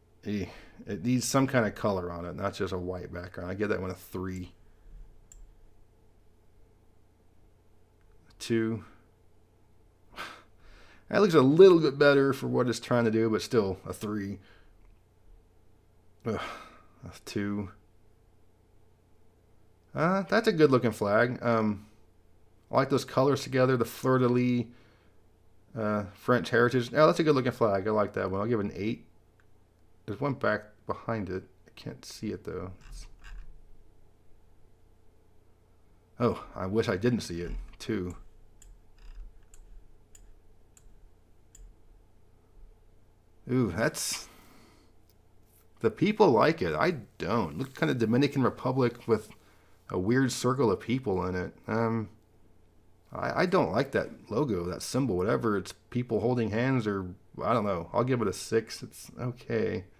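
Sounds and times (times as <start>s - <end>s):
low steady hum: 0.0s - 59.9s
computer mouse clicks: 37.7s - 41.8s.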